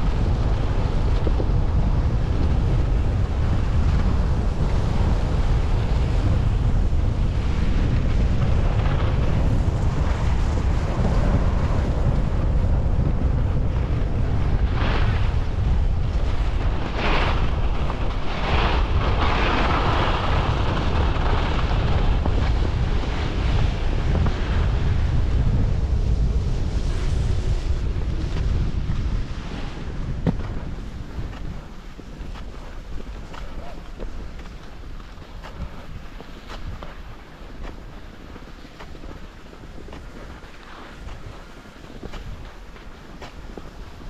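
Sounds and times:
wind rushing over microphone: 0.0s - 44.0s
skis hissing on snow: 14.0s - 44.0s.

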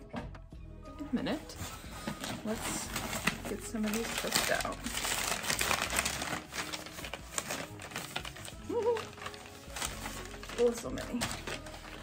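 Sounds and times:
tissue paper rustling: 1.3s - 12.0s.

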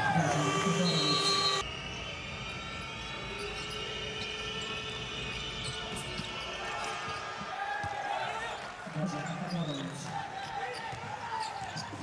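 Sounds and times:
basketball bouncing on court: 9.2s - 12.0s.

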